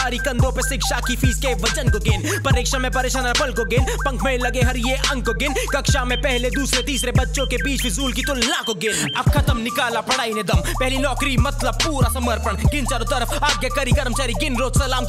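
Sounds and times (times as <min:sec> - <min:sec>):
rapping over a beat: 0:00.0 - 0:15.0
heavy sustained bass: 0:00.1 - 0:08.4.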